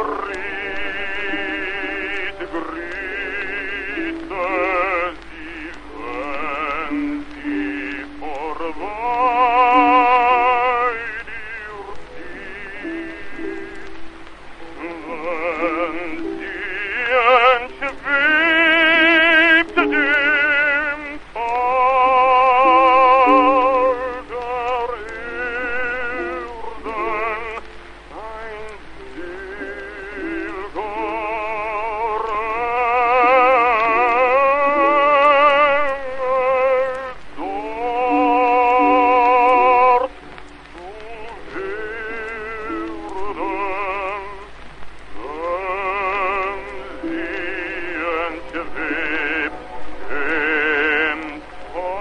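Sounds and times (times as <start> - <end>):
orchestral accompaniment: 0.0 - 36.2, 37.4 - 44.4, 45.2 - 52.0
old disc recording crackle: 0.0 - 52.0
operatic baritone singing: 0.0 - 52.0.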